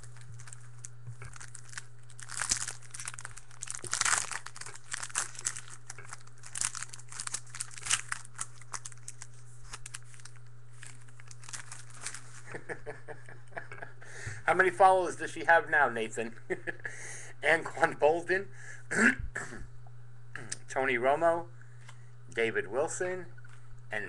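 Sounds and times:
wrapper tearing and crinkling: 0.0s - 12.6s.

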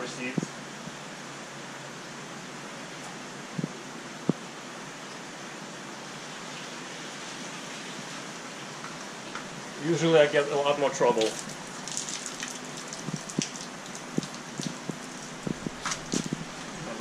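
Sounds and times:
circulating water and filtration: 0.0s - 17.0s.

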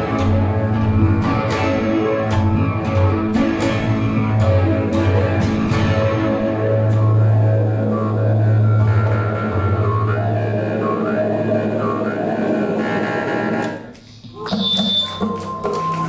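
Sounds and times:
band playing heavy low drone: 0.0s - 13.7s
wavering higher tone: 14.3s - 16.0s.

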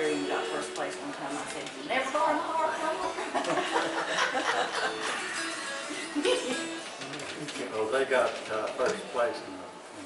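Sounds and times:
acoustic string instrument notes: 0.0s - 9.5s
people talking and chuckling: 2.8s - 7.9s.

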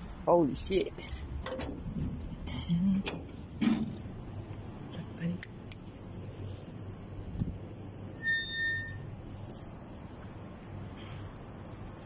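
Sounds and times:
metal gate squeaking: 8.2s - 9.1s.

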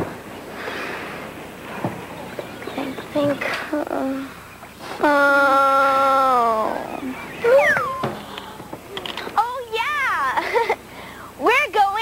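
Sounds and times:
child's high squeal: 7.4s - 8.0s.

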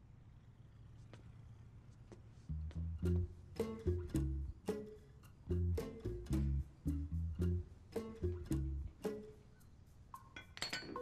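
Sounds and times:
plucked-string music cue: 2.5s - 9.3s
metal dumbbells clinking on floor: 10.2s - 11.0s.

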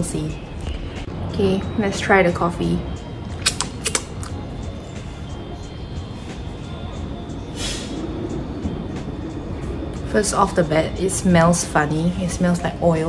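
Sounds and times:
short sniff: 7.6s - 8.0s.

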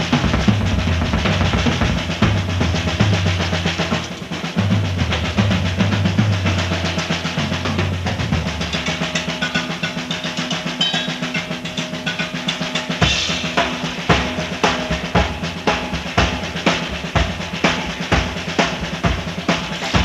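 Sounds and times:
bass guitar line: 0.0s - 3.9s
drum kit playing: 0.0s - 20.0s.

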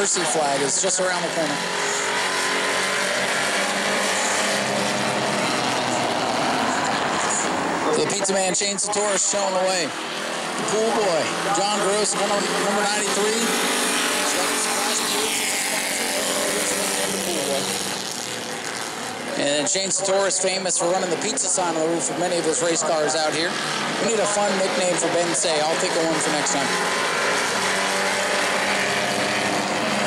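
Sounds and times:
race car engines at speed: 0.0s - 30.0s.

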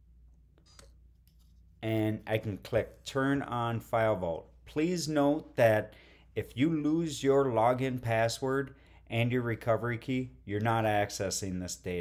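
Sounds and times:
low steady hum: 0.0s - 12.0s
man speaking: 1.8s - 12.0s.

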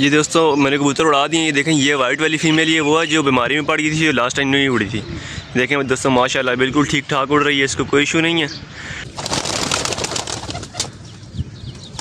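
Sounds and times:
pigeons flapping wings: 9.1s - 11.0s.

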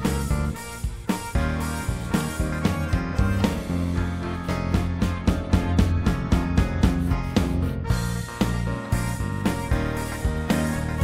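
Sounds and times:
instrumental music with a beat: 0.0s - 11.0s.

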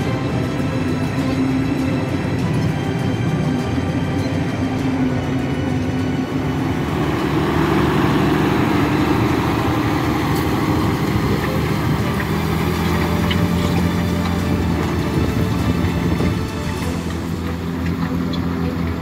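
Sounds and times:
tractor engine running: 0.0s - 19.0s.

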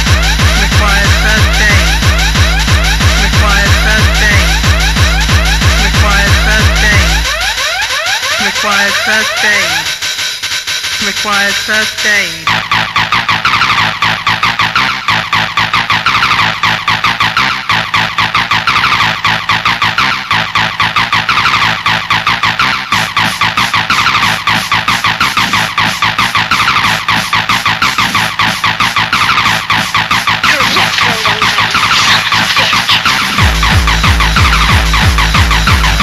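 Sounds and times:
fast hardcore techno beat: 0.0s - 36.0s.

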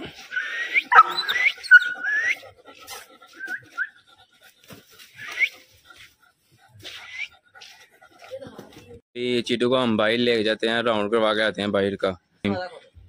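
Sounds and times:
animal raspy calls: 0.0s - 8.2s.

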